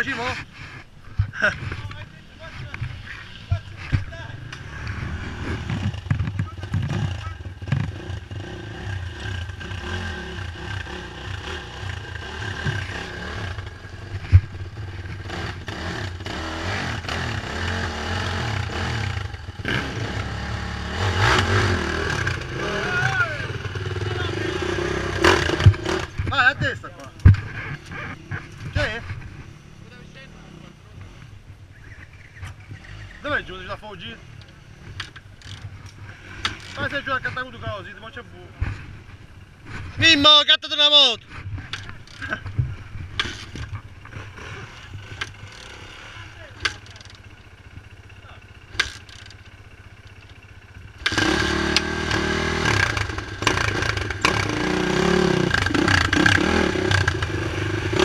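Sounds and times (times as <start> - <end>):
motorcycle engine revving: 0.0 - 58.0
knocks and clatter from rough ground: 0.2 - 8.0, 12.5 - 15.7, 25.3 - 29.5, 41.2 - 45.7.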